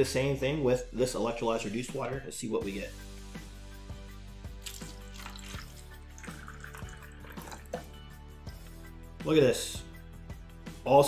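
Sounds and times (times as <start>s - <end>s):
background music: 0.0s - 11.0s
water pouring into plastic cup: 4.6s - 7.9s.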